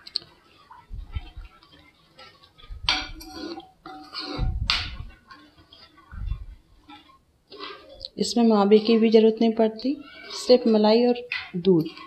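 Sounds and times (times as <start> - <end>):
spatula scraping a pan: 0.2 - 12.0.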